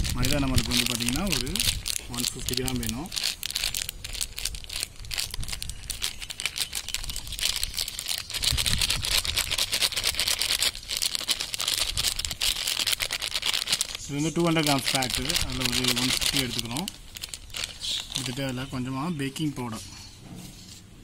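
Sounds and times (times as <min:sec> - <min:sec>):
plastic packet crinkling: 0:00.0 - 0:19.1.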